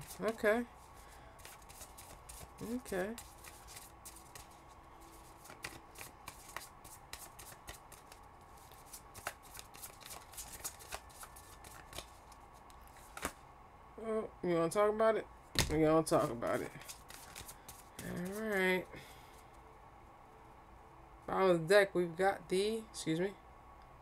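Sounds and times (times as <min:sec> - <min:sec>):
cards being shuffled: 0:00.0 - 0:13.4, 0:15.6 - 0:18.7.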